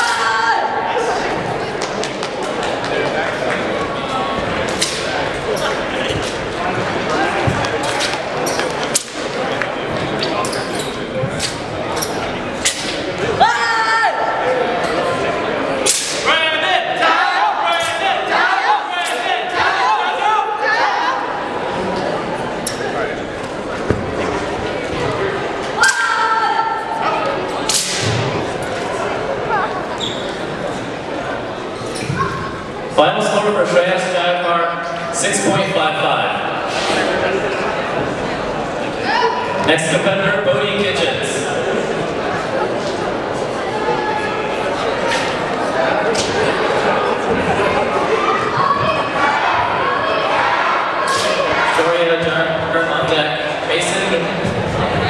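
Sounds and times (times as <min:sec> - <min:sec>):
background chatter: 0:00.0 - 0:55.0.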